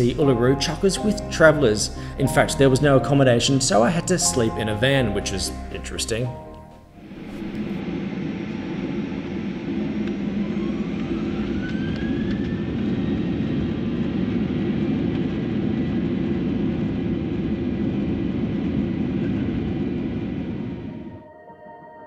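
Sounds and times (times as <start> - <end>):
jet engines roaring with rising whine: 7.0 - 21.3.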